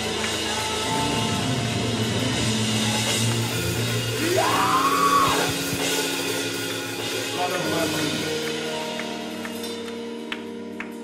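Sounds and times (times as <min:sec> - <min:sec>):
keyboard chords: 0:00.0 - 0:11.0
steady bass line: 0:00.0 - 0:11.0.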